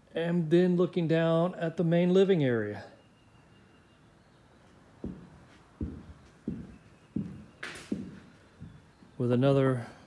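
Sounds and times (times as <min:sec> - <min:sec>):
footsteps on wooden floor: 0:05.0 - 0:09.2.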